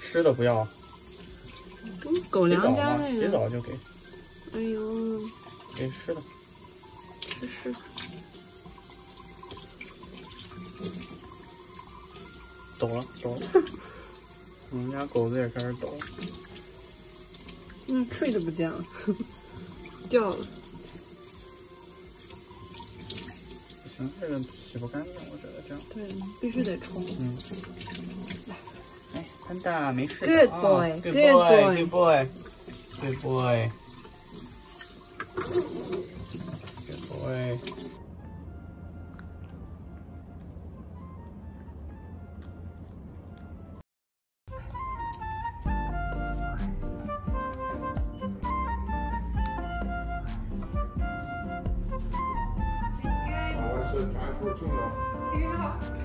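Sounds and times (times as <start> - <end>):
faucet running into steel sink: 0.0 - 38.0
water splashing: 0.0 - 38.0.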